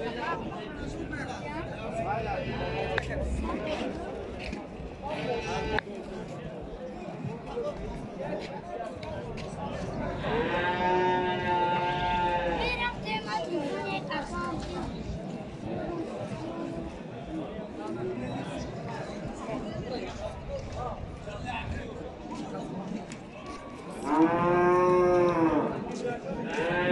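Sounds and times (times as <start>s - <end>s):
people talking: 0.0s - 26.9s
cattle mooing: 10.2s - 12.6s, 26.6s - 26.9s.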